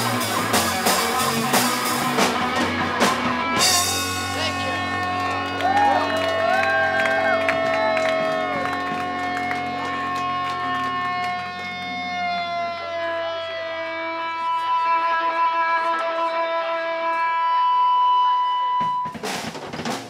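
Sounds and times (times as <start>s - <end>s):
sustained electric guitar and bass tones: 0.0s - 19.2s
crackling noise: 8.2s - 16.4s.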